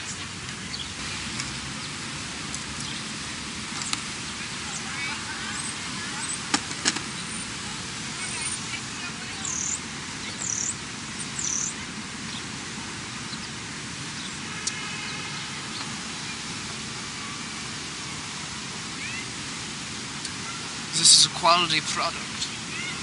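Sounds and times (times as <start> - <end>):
outdoor background hiss: 0.0 - 23.0.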